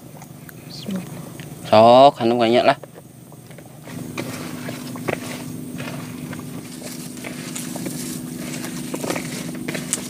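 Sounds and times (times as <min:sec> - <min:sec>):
steady low hum: 0:00.0 - 0:10.0
wet squelches of mixing: 0:03.8 - 0:10.0.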